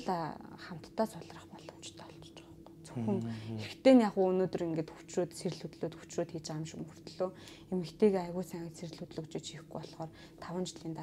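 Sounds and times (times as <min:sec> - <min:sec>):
faint steady hum: 0:00.0 - 0:11.0
person whispering: 0:01.1 - 0:03.7.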